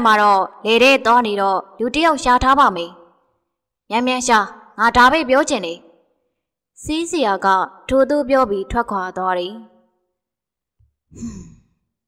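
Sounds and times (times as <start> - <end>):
person sighing: 11.2 - 11.6.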